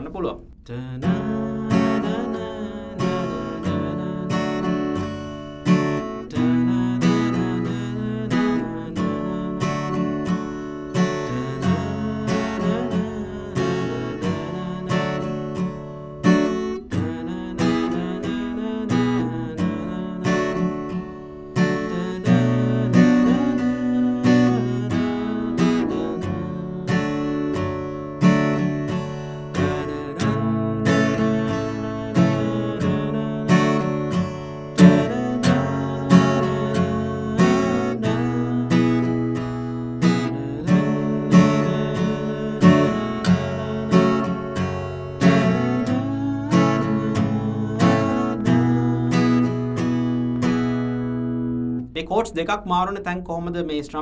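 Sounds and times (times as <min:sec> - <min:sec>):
acoustic guitar strumming: 0:00.0 - 0:53.8.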